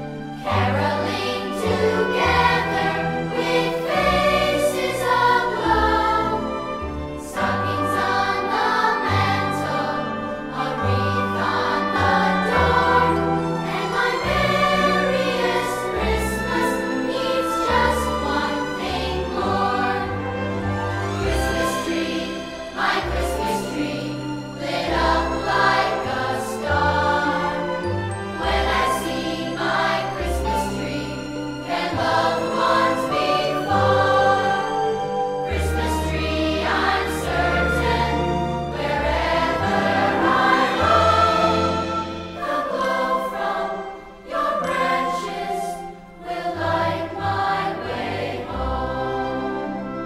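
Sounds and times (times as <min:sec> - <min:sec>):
instrumental accompaniment with bass: 0:00.0 - 0:48.1
choir singing: 0:00.0 - 0:50.0.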